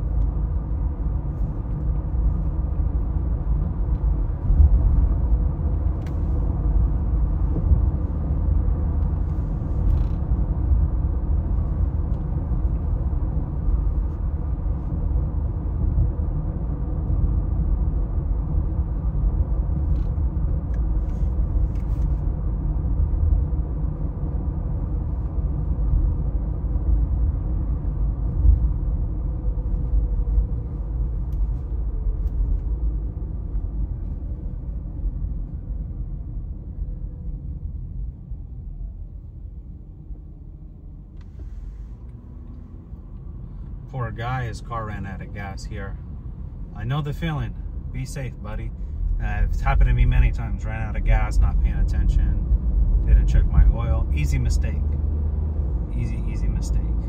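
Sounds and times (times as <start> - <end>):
car engine and tyre road rumble: 0.0 - 57.0.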